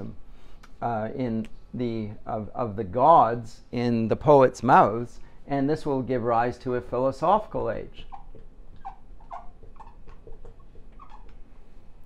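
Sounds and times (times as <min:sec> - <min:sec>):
marker squeaking on whiteboard: 0:08.0 - 0:11.6.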